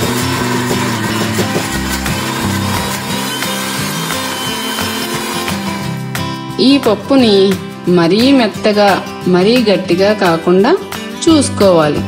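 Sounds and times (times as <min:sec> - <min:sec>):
mixer grinder running: 0:00.0 - 0:06.6
background music: 0:00.0 - 0:12.0.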